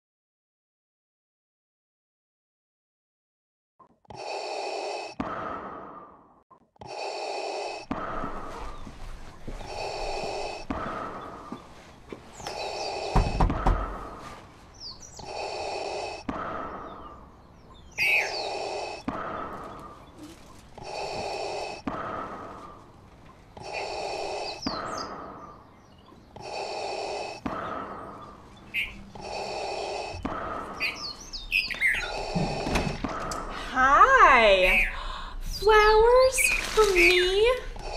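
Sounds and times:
small birds chirping: 0:03.8 - 0:37.9
mechanical respirator breathing: 0:04.1 - 0:33.8, 0:36.3 - 0:37.9.

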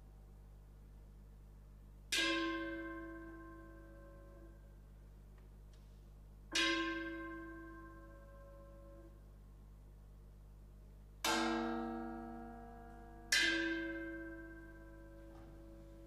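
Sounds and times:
bell-like metal percussion strikes: 0:11.3 - 0:16.0.

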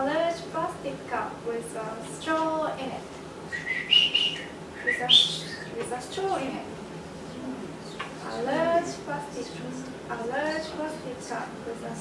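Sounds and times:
high-pitched whistle-like tones: 0:03.5 - 0:05.7.

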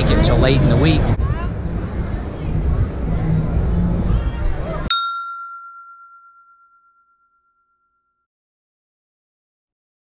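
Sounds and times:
bell-like ding: 0:04.9 - 0:08.2.

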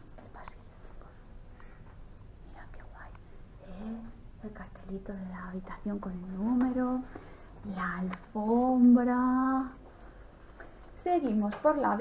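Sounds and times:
steady low hum: 0:00.0 - 0:12.0
person whispering: 0:00.2 - 0:01.3, 0:02.4 - 0:04.2.

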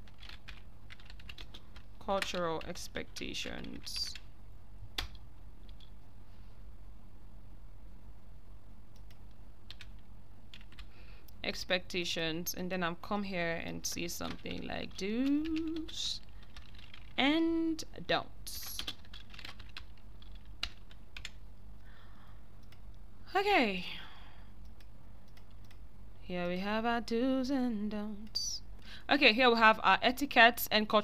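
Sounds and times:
computer keyboard typing: 0:00.0 - 0:04.3, 0:05.0 - 0:05.9, 0:08.9 - 0:10.9, 0:14.0 - 0:17.2, 0:18.5 - 0:21.4, 0:24.6 - 0:25.8
steady low hum: 0:00.0 - 0:31.0.

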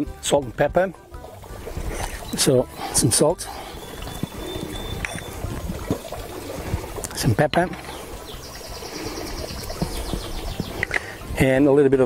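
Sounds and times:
bird trilling: 0:03.6 - 0:05.5, 0:07.8 - 0:10.9.

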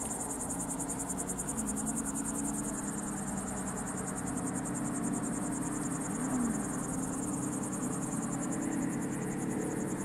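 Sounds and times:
insects trilling: 0:00.0 - 0:10.0
low steady hum: 0:05.9 - 0:09.1.

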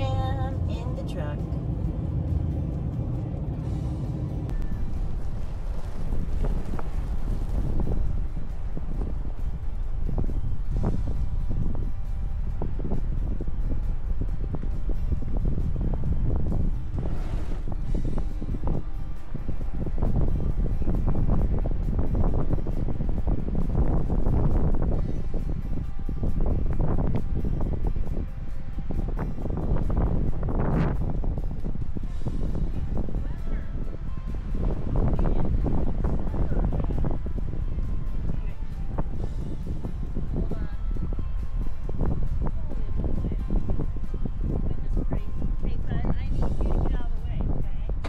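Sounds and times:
background music: 0:00.0 - 0:48.0
wind buffeting microphone: 0:00.0 - 0:48.0.

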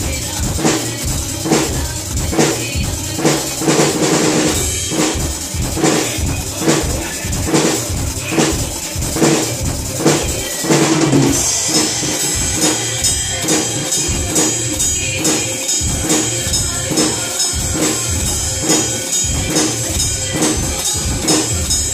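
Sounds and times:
drum kit playing: 0:00.0 - 0:21.9
recorded film song: 0:00.0 - 0:21.9
bright cymbal wash: 0:03.6 - 0:21.9.

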